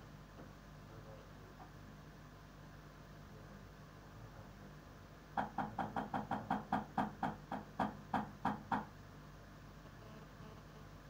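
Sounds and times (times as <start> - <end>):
rapid sharp knocks: 5.4 - 8.9.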